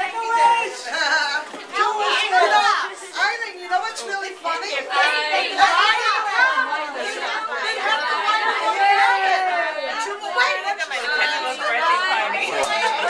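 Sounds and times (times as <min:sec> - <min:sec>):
overlapping voices talking: 0:00.0 - 0:13.0.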